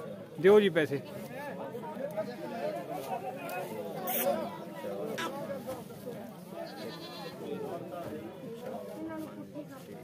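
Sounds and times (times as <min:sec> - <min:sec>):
goat bleating: 0:06.6 - 0:07.4.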